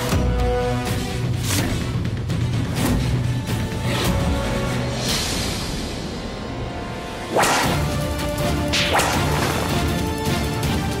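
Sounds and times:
dramatic background music: 0.0 - 11.0
whip lash swish: 7.3 - 8.0, 8.7 - 9.7.

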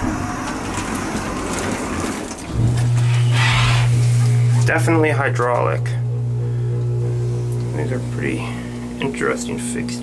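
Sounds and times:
hydraulic pump motor humming: 0.0 - 10.0.

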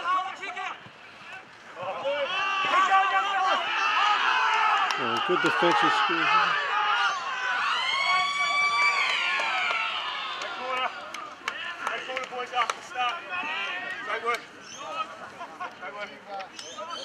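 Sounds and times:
people shouting: 0.0 - 15.2.

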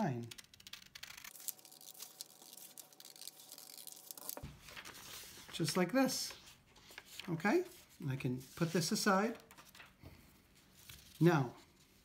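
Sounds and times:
paper rustling: 0.3 - 12.0.

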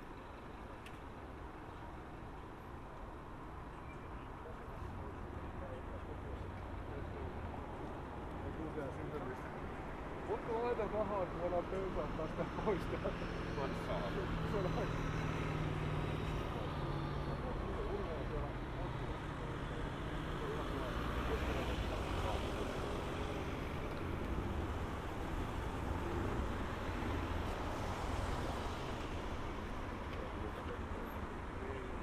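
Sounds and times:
cars driving past: 4.8 - 32.0.

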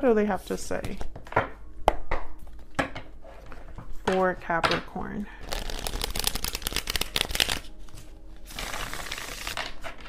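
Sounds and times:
cards shuffling: 5.4 - 10.0.

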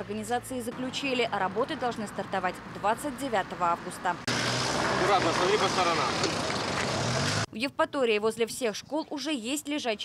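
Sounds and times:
road traffic noise: 0.0 - 7.6.

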